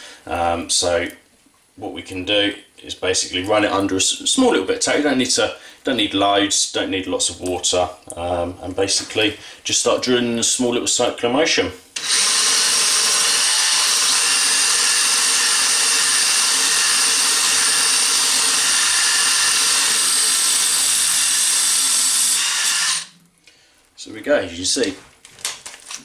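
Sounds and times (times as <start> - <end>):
drill drilling into glass bottle: 12.0 - 23.2.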